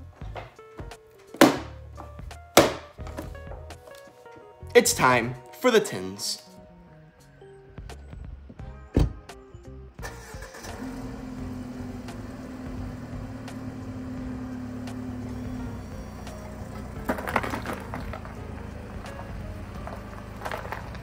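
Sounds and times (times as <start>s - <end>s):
car engine running: 10.0s - 21.0s
tyres crunching metal tins on gravel: 16.6s - 21.0s.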